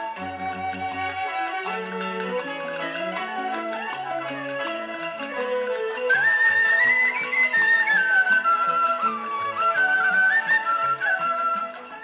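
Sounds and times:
bamboo flute melody: 0:00.0 - 0:12.0.

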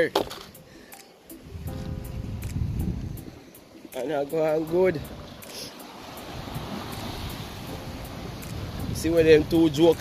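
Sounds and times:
wind on microphone: 0:01.4 - 0:03.5, 0:06.2 - 0:10.0
surf washing against rocks: 0:03.8 - 0:10.0.

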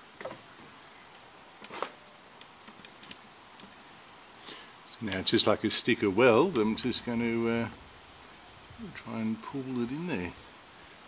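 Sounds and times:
low steady hiss: 0:00.0 - 0:11.0
sharp clicks and light taps: 0:02.4 - 0:03.8.

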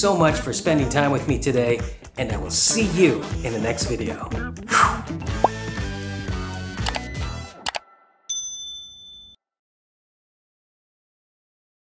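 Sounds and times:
background music: 0:00.0 - 0:08.5
quick clicks: 0:06.8 - 0:07.1
bright high bell ding: 0:08.3 - 0:09.4.

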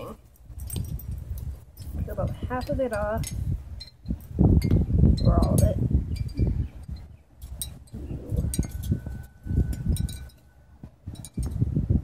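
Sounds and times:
wind chimes tinkling: 0:00.0 - 0:11.7
wind buffeting microphone: 0:00.0 - 0:12.0.

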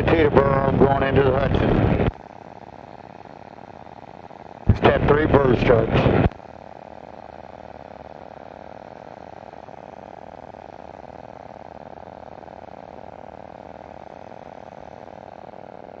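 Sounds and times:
aircraft engine and propeller drone: 0:00.0 - 0:16.0.

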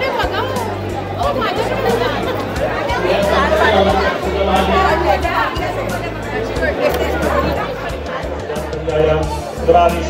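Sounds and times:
background music with low bass: 0:00.0 - 0:10.0
women chattering excitedly: 0:00.0 - 0:10.0.

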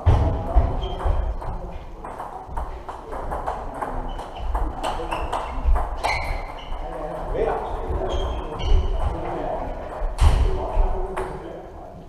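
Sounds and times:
table tennis balls clicking: 0:00.8 - 0:08.0.

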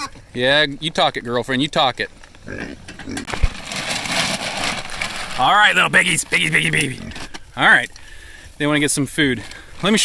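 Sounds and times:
paper sack rustling: 0:03.3 - 0:07.4.

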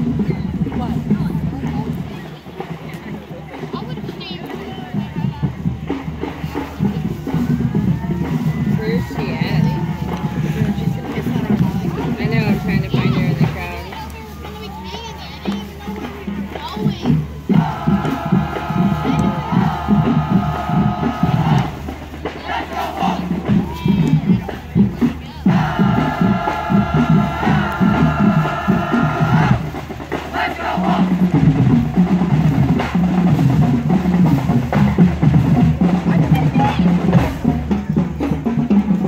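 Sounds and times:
marching band drums: 0:00.0 - 0:39.0.

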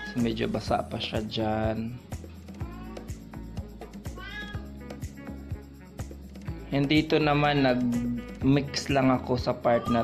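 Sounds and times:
background music with beat: 0:00.0 - 0:10.0
cat meowing: 0:02.6 - 0:03.3, 0:04.0 - 0:04.7, 0:09.6 - 0:10.0.

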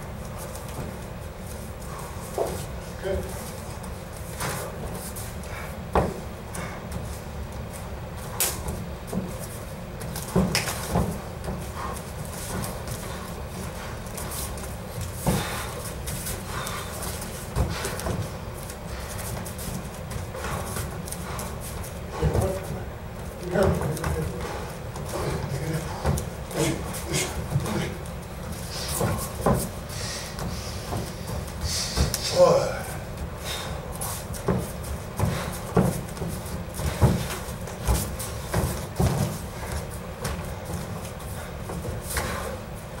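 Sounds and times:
bare feet on mats: 0:00.0 - 0:43.0
fighters breathing: 0:01.8 - 0:03.6, 0:04.3 - 0:07.2, 0:11.5 - 0:22.9, 0:24.2 - 0:38.4, 0:41.2 - 0:42.8.

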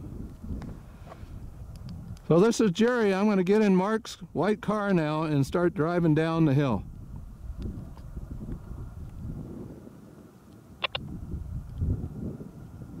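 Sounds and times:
wind buffeting microphone: 0:00.0 - 0:03.5, 0:04.2 - 0:13.0
quick clicks: 0:10.8 - 0:11.0.

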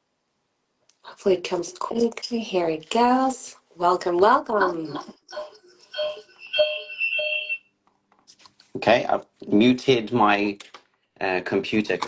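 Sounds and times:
ringing electronic tones: 0:04.6 - 0:07.7
high feedback whistle: 0:05.3 - 0:07.7.

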